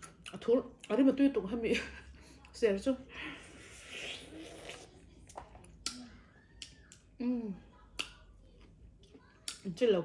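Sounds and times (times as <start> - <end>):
wet mouth clicks and smacks: 5.6 - 6.0.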